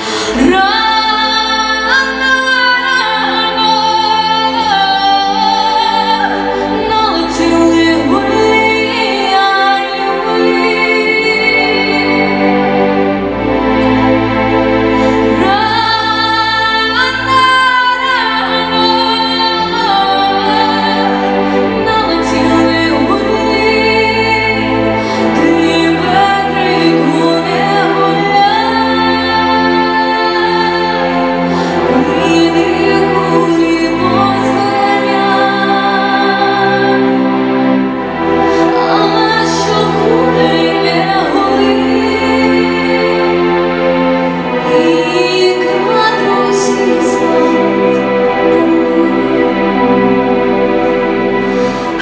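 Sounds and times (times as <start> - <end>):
woman singing into microphone: 0.0 - 13.0, 15.0 - 52.0
backing music: 0.0 - 52.0.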